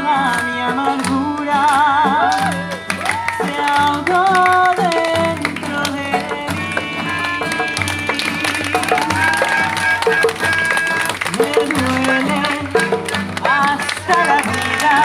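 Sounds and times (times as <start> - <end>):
acoustic guitar strumming: 0.0 - 15.0
person singing: 0.0 - 15.0
melodica held notes: 6.4 - 11.2.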